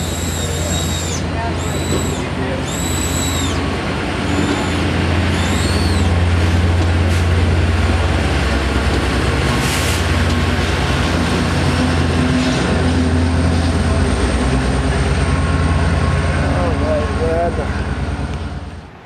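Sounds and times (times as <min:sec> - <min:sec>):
short high whines: 0:00.0 - 0:06.2
diesel locomotive engine drone: 0:00.0 - 0:19.0
train cars rumbling past: 0:00.0 - 0:19.0.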